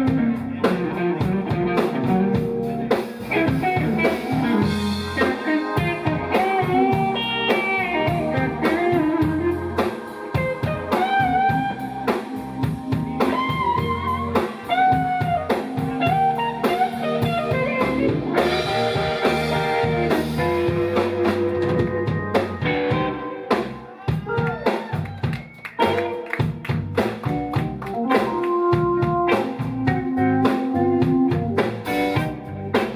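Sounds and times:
blues band playing: 0.0 - 32.9
electric guitar lead: 0.0 - 32.9.

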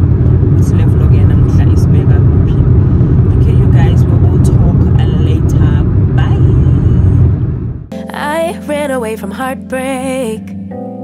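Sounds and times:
car engine: 0.0 - 7.9
road noise: 0.0 - 7.9.

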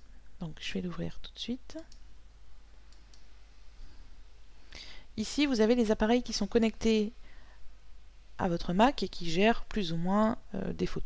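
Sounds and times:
low background hum: 0.0 - 11.0
computer mouse clicks: 2.9 - 3.3.

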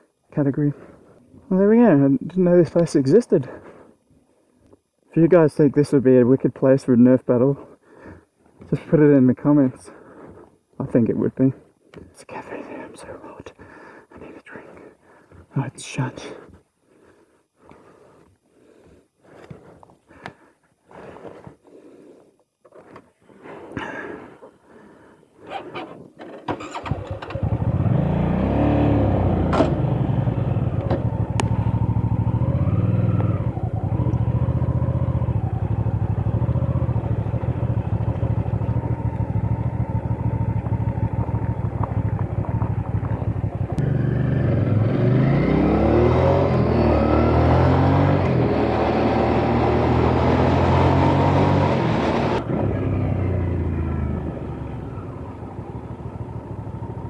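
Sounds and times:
motorcycle engine accelerating: 26.6 - 57.0.

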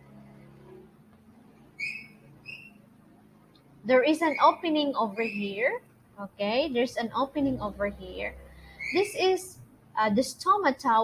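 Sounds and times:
faint low hum: 0.0 - 11.0
high-pitched whistle-like chirp: 1.8 - 2.8.

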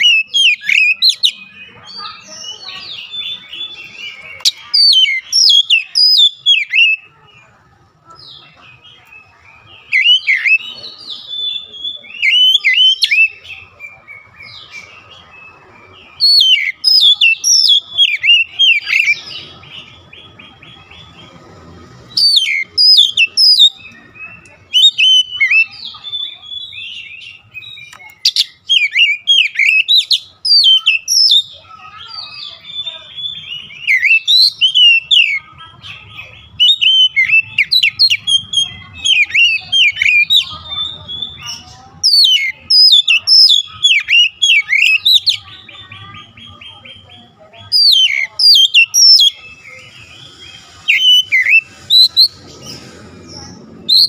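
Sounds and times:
bird singing whistles and chirps: 0.0 - 7.1, 8.9 - 21.0, 22.2 - 54.0.

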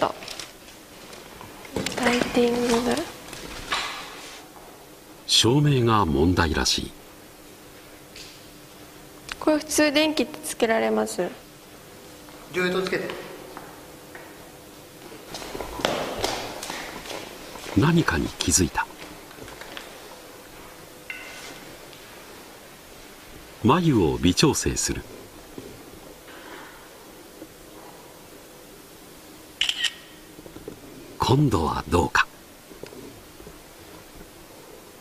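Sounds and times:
quick footsteps on a floor: 15.0 - 18.0
phone camera shutter click: 29.6 - 30.2.

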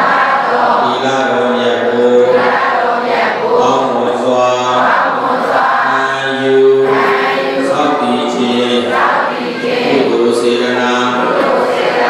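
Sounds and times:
group chanting in unison: 0.0 - 12.0.

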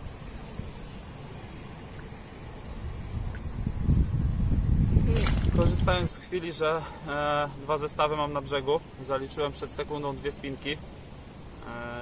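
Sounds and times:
wind buffeting microphone: 2.5 - 6.2.

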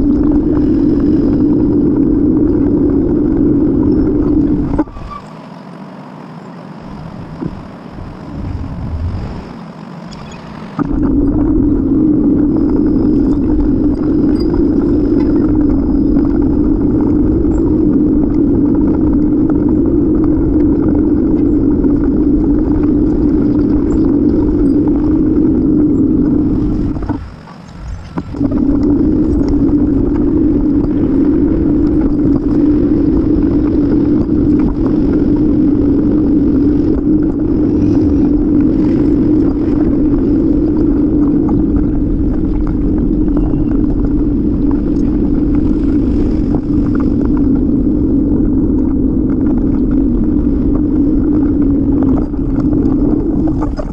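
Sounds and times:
bicycle ride rumbling: 0.0 - 53.9.

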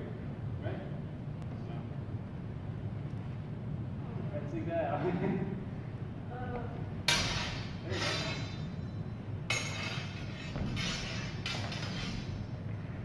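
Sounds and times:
metal swords clashing: 7.1 - 12.5.

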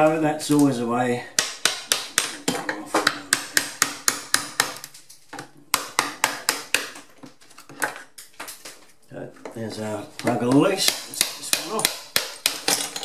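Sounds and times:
hammer striking metal chisel: 10.3 - 13.0.

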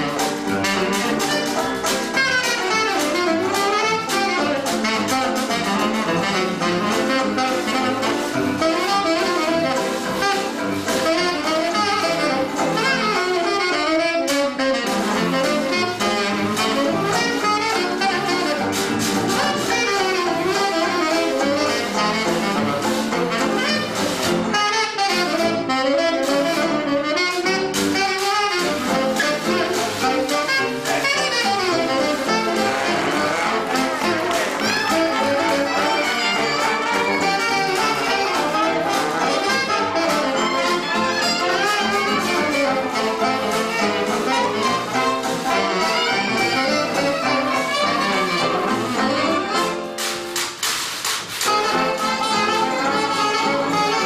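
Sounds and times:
tenor saxophone solo: 0.0 - 50.0, 51.4 - 54.0
jazz band playing: 0.0 - 54.0
trumpet: 0.0 - 54.0.

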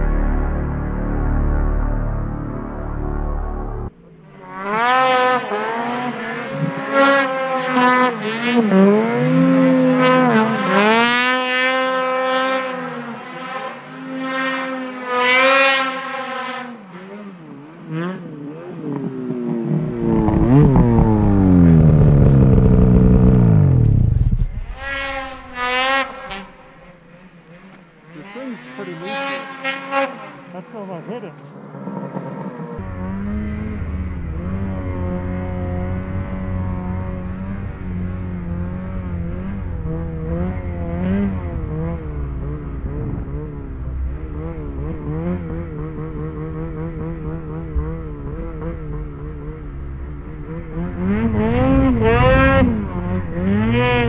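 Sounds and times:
snowmobile engines revving: 0.0 - 54.0
snowmobile passing at speed: 0.0 - 54.0.

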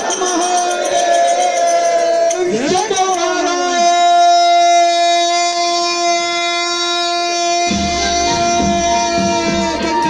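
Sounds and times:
wind instrument holding a note: 3.8 - 10.0.

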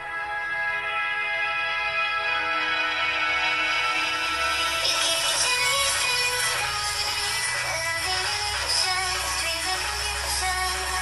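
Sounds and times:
electronic song from phone speaker: 0.0 - 11.0.

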